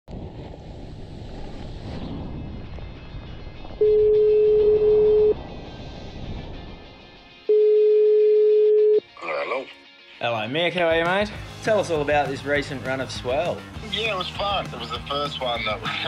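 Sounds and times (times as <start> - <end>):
telephone ringing tone beep: 3.8 - 5.4, 7.5 - 9.0.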